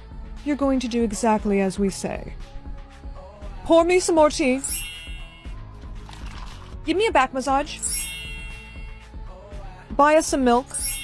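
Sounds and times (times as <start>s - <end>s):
quiet background music: 0.0s - 11.0s
bright ding: 4.6s - 5.6s, 7.8s - 9.0s, 10.7s - 11.0s.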